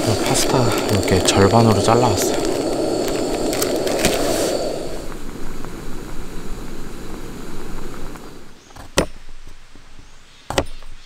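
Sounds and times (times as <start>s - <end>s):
gas stove burner roaring: 0.0s - 8.6s.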